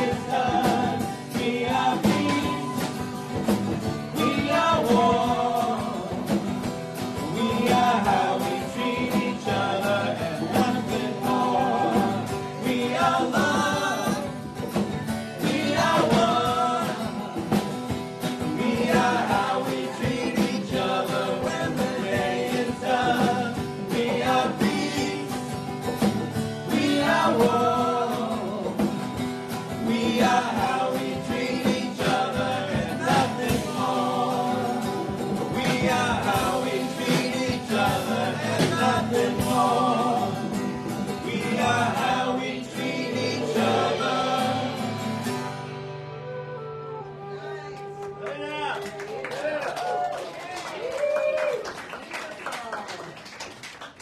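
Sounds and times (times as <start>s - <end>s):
backing singers: 0.0s - 45.8s
strummed acoustic guitar: 0.0s - 47.3s
lead singer: 0.0s - 47.4s.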